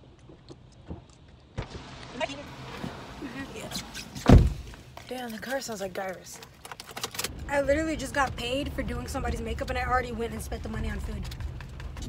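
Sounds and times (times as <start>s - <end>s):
low steady hum in car: 0.8s - 12.0s
car door thump: 4.1s - 4.7s.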